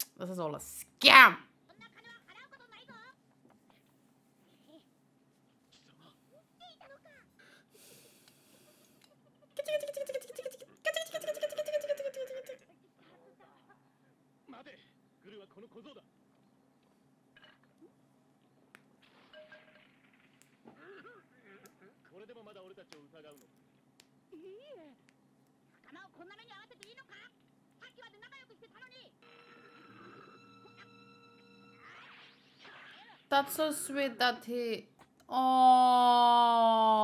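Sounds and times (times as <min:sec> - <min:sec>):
high expressive character voice: 0:00.0 - 0:01.5, 0:09.6 - 0:12.6, 0:33.3 - 0:37.0.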